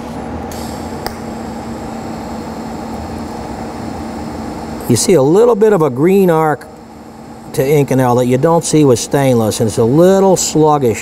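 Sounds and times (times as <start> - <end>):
welding arc hissing: 0.5 - 10.9.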